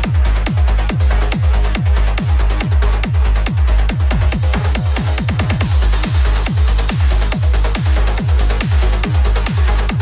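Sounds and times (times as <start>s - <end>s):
deep kick drum: 0.0s - 10.0s
trance music: 0.0s - 10.0s.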